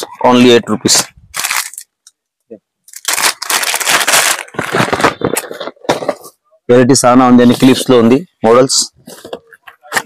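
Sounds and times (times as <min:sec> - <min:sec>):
plastic and foil packaging crinkling: 0:01.3 - 0:01.9, 0:02.9 - 0:06.3.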